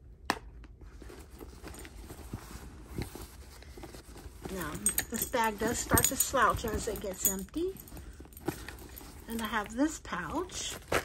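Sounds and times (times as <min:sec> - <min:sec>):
hand rummaging in leather bag: 0:00.9 - 0:11.0.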